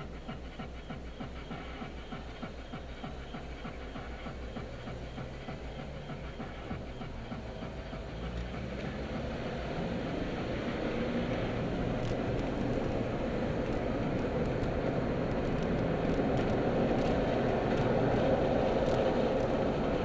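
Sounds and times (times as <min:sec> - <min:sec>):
fast ticking patter: 0:00.0 - 0:20.0
car engine from inside cabin: 0:03.6 - 0:20.0.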